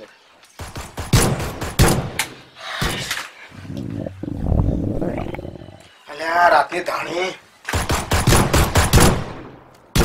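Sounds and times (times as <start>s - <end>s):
sharp gunshot: 7.8s - 10.0s.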